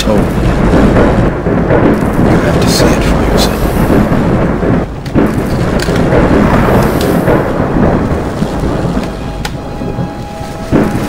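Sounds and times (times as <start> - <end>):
thunder rolling rumble: 0.0 - 11.0.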